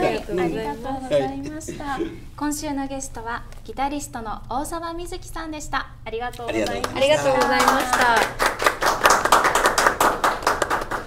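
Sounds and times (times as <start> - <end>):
people clapping: 6.4 - 11.0.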